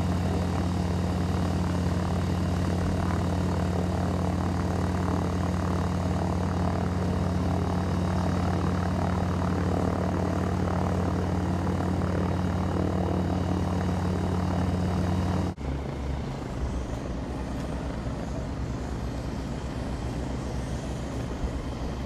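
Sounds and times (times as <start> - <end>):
propeller engines droning: 0.0 - 22.0.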